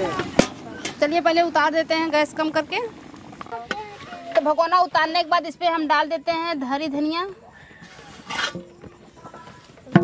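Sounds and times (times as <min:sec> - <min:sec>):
rustling: 0:07.6 - 0:10.0.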